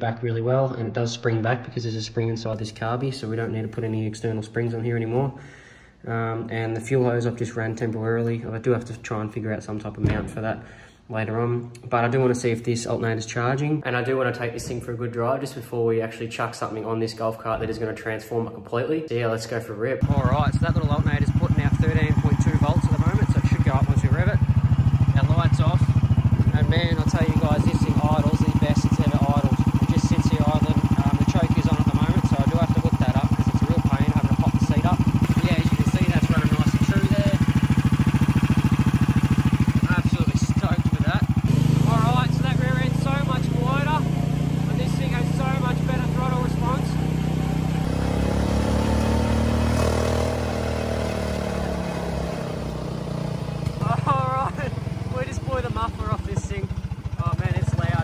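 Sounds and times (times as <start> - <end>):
small buggy engine running: 20.0 - 58.0.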